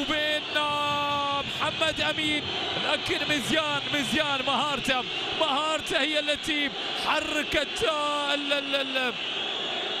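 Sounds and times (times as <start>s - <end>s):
man commentating: 0.0s - 9.2s.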